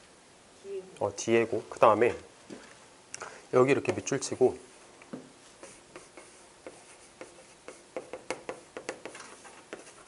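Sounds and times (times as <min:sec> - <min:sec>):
chalk tapping and scraping: 0:05.6 - 0:10.0.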